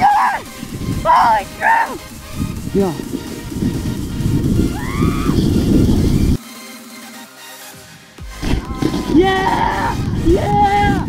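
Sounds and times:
background music: 0.0 - 11.0
wind on camera: 0.4 - 6.4, 8.4 - 11.0.

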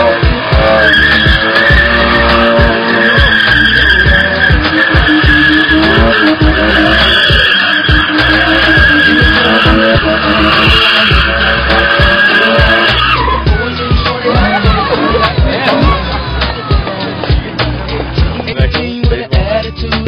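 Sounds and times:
car engine revving: 0.0 - 18.6
tyres squealing: 0.0 - 18.6
music with bass beat: 0.0 - 20.0.

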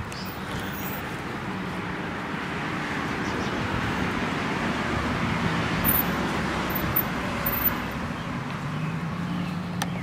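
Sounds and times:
passing car engine and tyres: 0.0 - 10.0.

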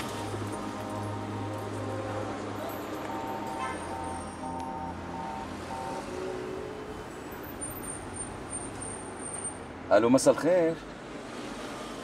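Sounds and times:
short musical tune: 0.0 - 6.7
street traffic hum: 0.0 - 12.0.

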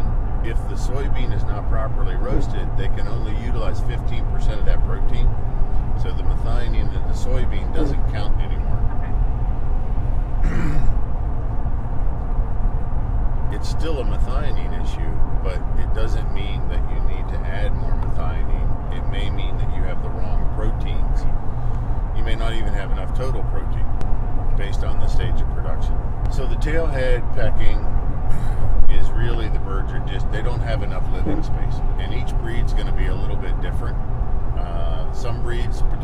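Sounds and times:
person talking: 0.0 - 5.3, 6.0 - 9.2, 13.5 - 21.2, 24.6 - 27.9, 28.9 - 33.9, 34.6 - 36.0
steady low rumble: 0.0 - 36.0.

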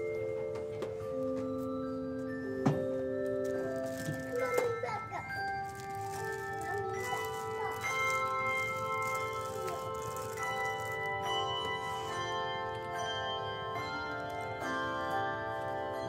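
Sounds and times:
handbell chords ringing: 0.0 - 16.0.

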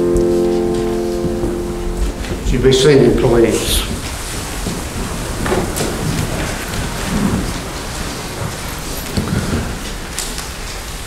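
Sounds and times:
faint knocks: 0.0 - 3.2.

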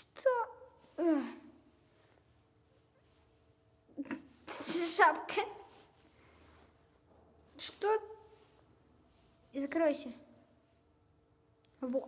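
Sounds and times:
child breathy vocal sounds: 0.9 - 1.7.

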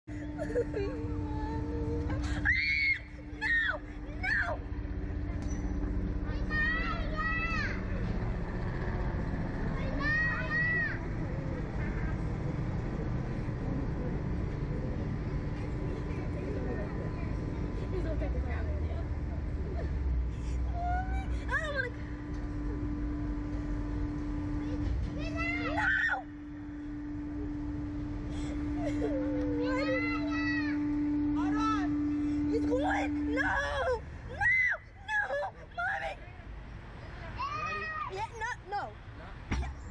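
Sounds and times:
low rumbling noise: 0.0 - 37.4.

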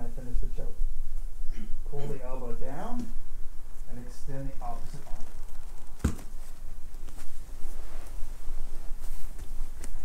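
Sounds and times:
low steady hum: 0.0 - 10.0
cloth rustling on a mat: 6.0 - 10.0.

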